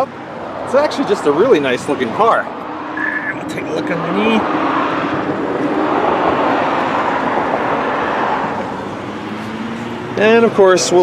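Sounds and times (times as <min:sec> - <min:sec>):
road traffic rushing past: 0:00.0 - 0:11.0.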